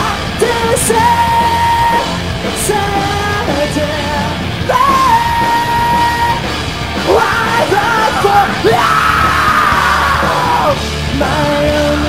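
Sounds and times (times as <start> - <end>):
screamo band playing loud: 0.0 - 12.0.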